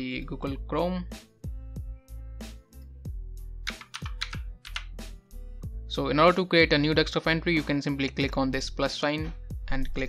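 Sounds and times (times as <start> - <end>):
quiet background music: 0.0 - 10.0
computer keyboard typing: 3.7 - 4.9.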